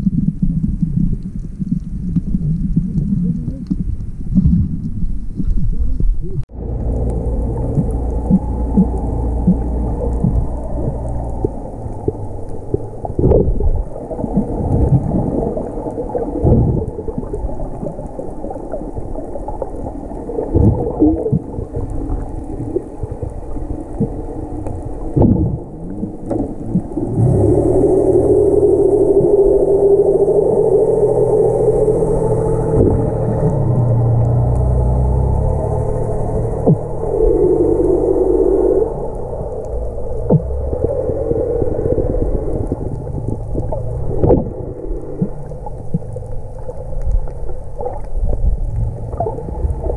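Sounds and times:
underwater knocks and thumps: 0.0 - 17.9, 20.4 - 22.9, 25.1 - 27.2, 40.2 - 40.6, 43.0 - 44.6
low wavering hum: 0.0 - 49.9
muffled underwater rumble: 0.0 - 49.9.

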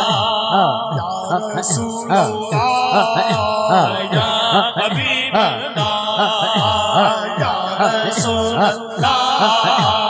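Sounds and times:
chanted vocal syllables: 0.0 - 10.0
held vocal drone: 0.0 - 10.0.

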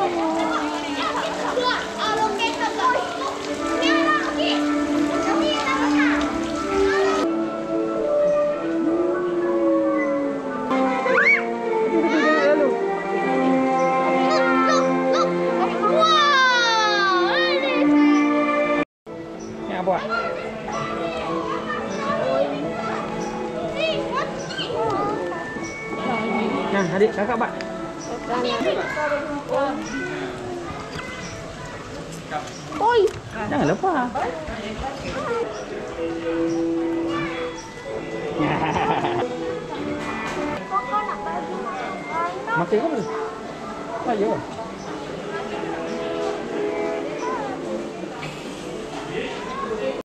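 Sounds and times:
children exclaiming: 0.0 - 7.3, 11.0 - 12.7, 14.0 - 18.3, 20.0 - 25.3, 36.7 - 39.2
children chattering and squealing: 0.0 - 7.4, 8.1 - 18.7, 19.4 - 50.0
background music: 0.0 - 30.3, 35.4 - 49.3.

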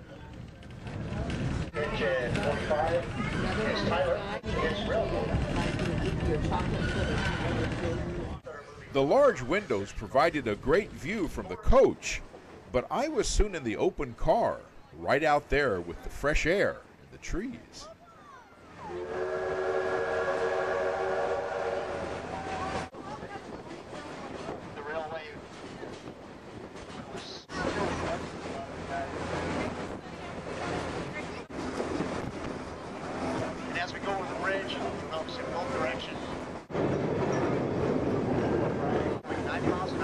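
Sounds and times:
train cars rolling on track: 0.0 - 17.7, 18.6 - 40.0
steam locomotive whistle: 18.8 - 22.8.

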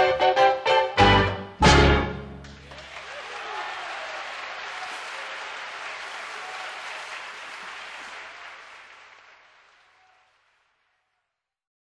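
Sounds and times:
audience applause: 2.4 - 11.3.

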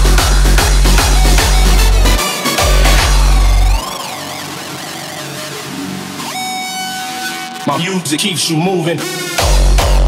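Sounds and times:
heavy kick drum: 0.0 - 3.9, 9.4 - 10.0
rising synth sweep: 0.1 - 7.6
wavering synth: 0.1 - 7.6.

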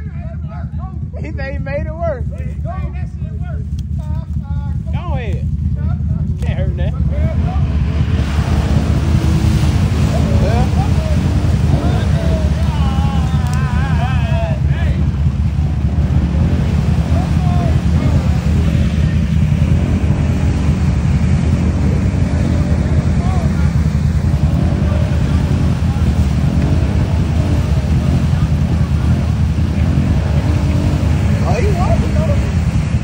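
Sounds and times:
quad bike engine running hard: 0.0 - 33.0
tires throwing mud: 1.2 - 33.0.

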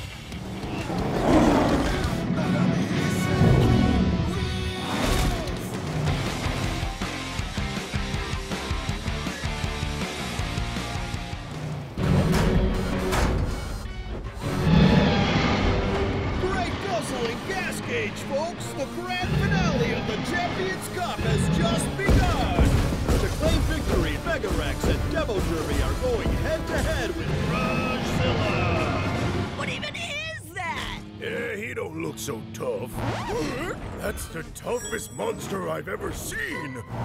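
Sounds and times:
dramatic cartoon music: 0.0 - 37.0
impact and crash effects: 21.2 - 27.6
loud low thuds: 21.4 - 27.2.

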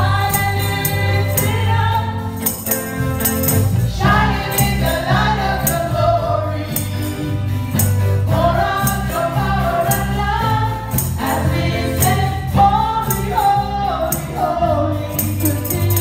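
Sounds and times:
women singing: 0.0 - 2.6, 3.8 - 16.0
percussion hits: 0.0 - 6.1, 6.7 - 13.5
drums: 0.0 - 16.0
electric bass: 0.0 - 16.0
electric guitar: 0.0 - 16.0.

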